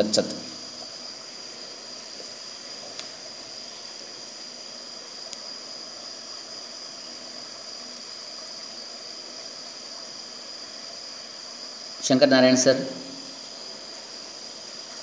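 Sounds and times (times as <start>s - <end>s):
even hiss: 0.0s - 15.0s
high-pitched whine: 0.0s - 15.0s.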